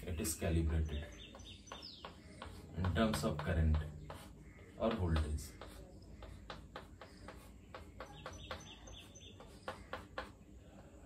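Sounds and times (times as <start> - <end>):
chalk tapping on blackboard: 0.6 - 11.0.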